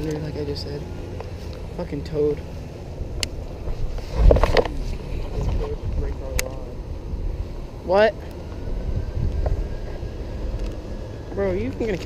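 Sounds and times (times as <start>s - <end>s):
wind rumbling on microphone: 0.8s - 12.0s.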